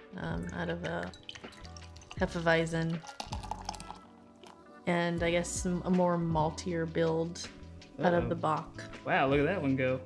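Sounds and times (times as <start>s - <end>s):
beer pouring into a glass: 1.0s - 4.6s.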